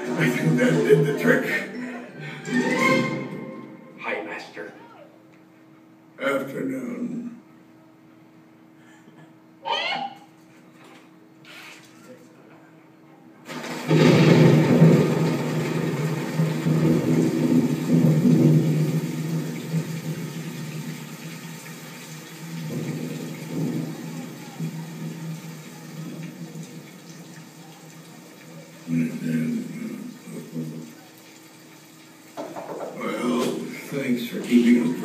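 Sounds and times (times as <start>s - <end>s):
thunder rumble: 13.5s - 27.6s
rain: 13.5s - 35.0s.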